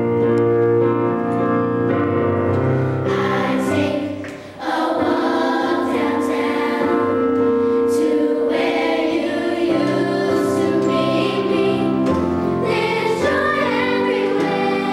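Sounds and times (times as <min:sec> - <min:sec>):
children's choir singing: 0:03.0 - 0:14.9.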